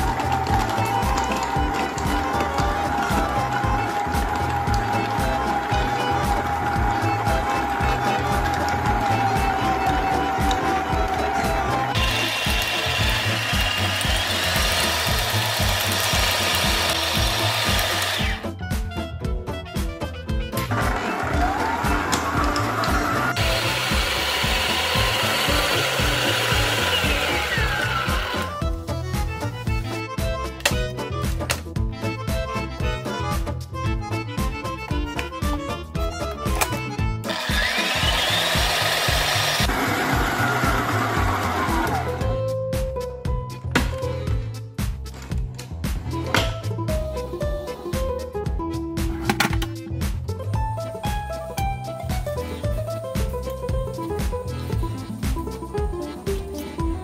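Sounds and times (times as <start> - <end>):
stand mixer whirring: 0.0 - 18.4, 20.8 - 28.5, 37.2 - 42.2
background music with beat: 0.0 - 57.0.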